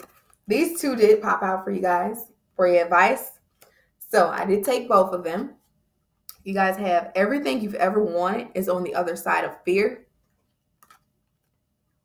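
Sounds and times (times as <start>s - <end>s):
faint clicks of cards handled: 10.2s - 11.6s.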